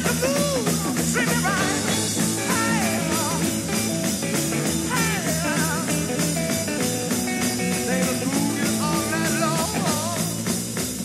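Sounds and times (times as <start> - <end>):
blues-rock band playing: 0.0 - 11.0
lead guitar with vibrato: 1.4 - 10.2.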